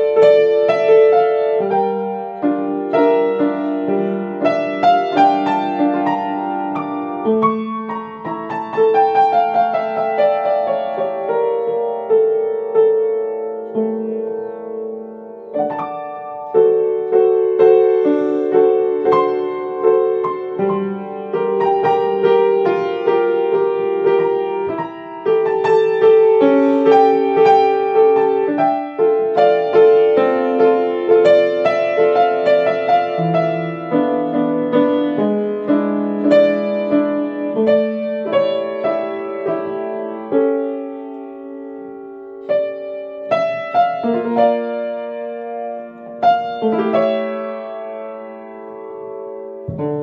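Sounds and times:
solo piano slow melody: 0.0s - 50.0s.

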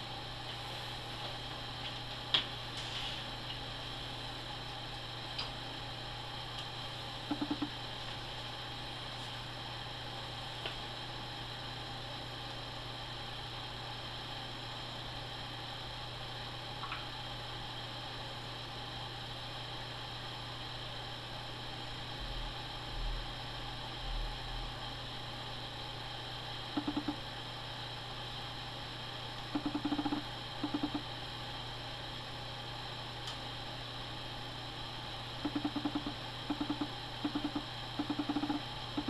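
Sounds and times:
electrical hum and hiss: 0.0s - 39.0s.

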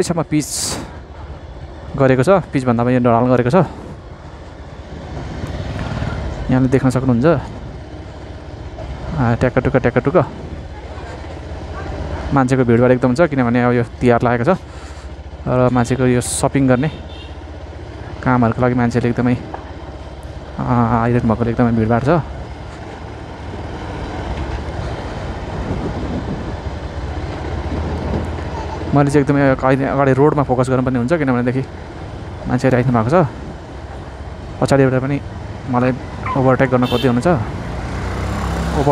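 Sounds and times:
street background rumble: 0.0s - 38.9s
person speaking: 34.6s - 37.7s.

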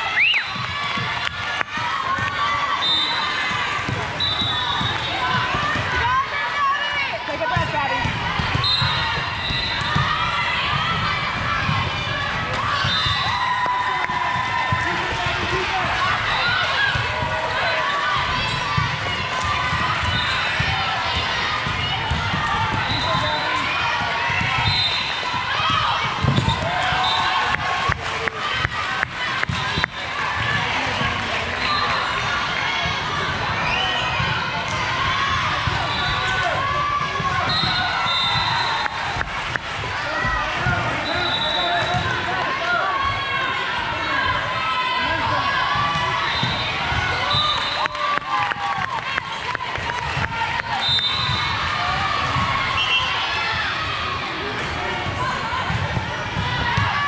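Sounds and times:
overlapping voices in a hall: 0.0s - 57.0s
volleyball hits and bounces: 0.4s - 6.4s, 7.3s - 42.6s, 45.1s - 57.0s.

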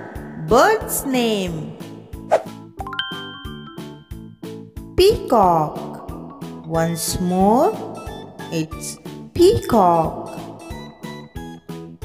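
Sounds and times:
children's music with steady beat: 0.0s - 12.0s.

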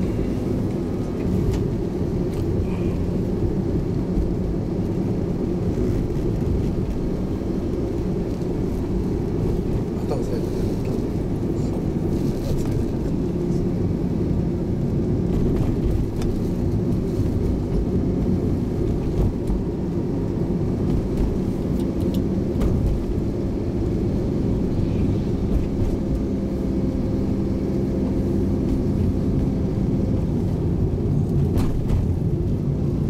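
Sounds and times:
road noise: 0.0s - 33.0s
vehicle engine running: 0.0s - 33.0s.

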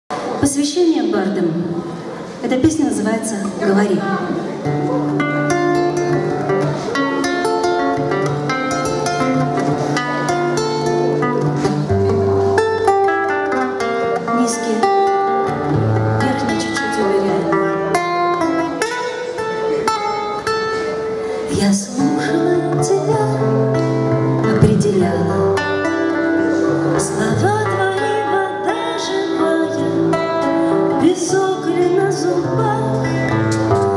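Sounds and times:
fingerstyle classical guitar: 3.4s - 33.9s.

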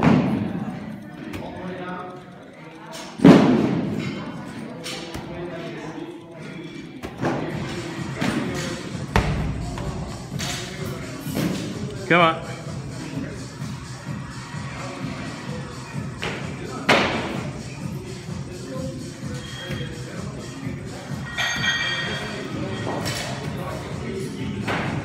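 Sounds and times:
background music: 4.6s - 25.0s.

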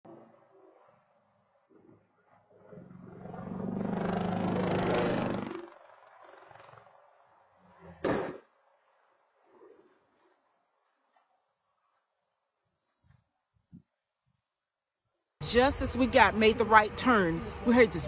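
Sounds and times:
helicopter roar overhead: 0.1s - 10.3s, 15.4s - 18.0s.

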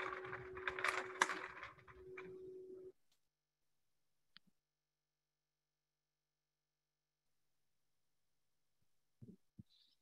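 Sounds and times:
rustling noise: 0.0s - 2.3s.

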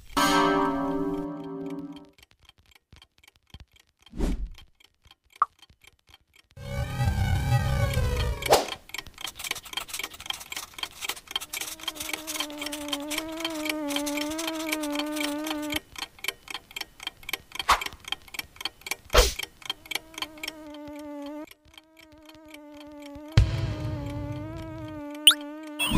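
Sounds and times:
clock ticking: 0.0s - 25.9s.

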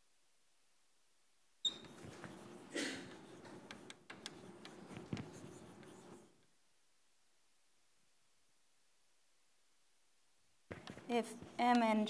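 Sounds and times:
chalk tapping: 1.7s - 6.3s, 10.7s - 12.0s
chalk scratching on blackboard: 1.7s - 6.4s, 10.7s - 12.0s.

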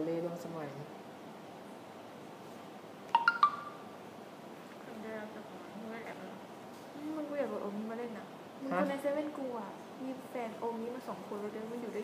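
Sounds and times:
three-note electronic chime: 3.2s - 3.8s.

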